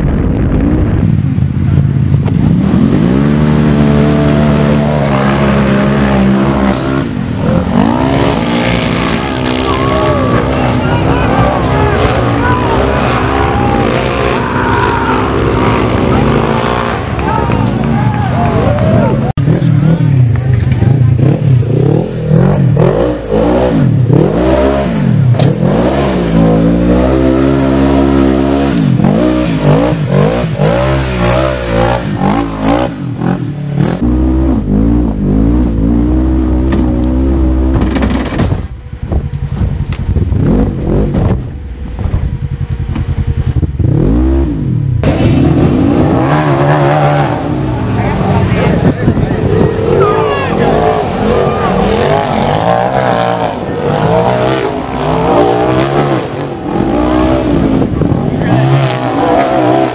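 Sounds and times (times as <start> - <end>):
engine revving in bursts: 2.2 - 17.3, 19.4 - 38.4, 43.2 - 59.9.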